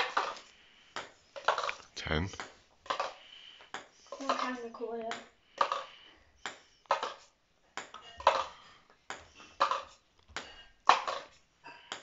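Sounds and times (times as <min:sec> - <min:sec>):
ping-pong ball bouncing: 0:00.0 - 0:00.4, 0:01.0 - 0:01.8, 0:02.4 - 0:12.0.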